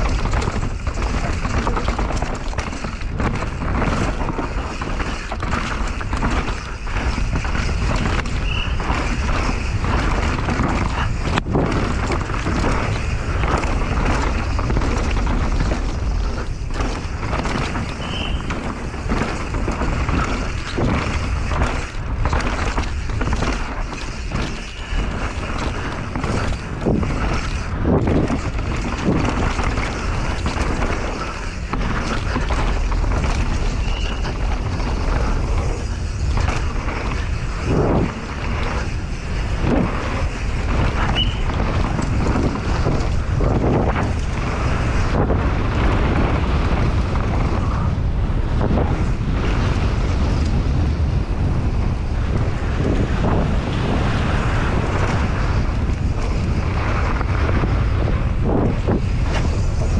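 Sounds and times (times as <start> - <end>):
bike rattling over rough ground: 0.0 - 59.9
tyres rolling over dirt: 0.0 - 59.9
wind buffeting microphone: 0.0 - 59.9.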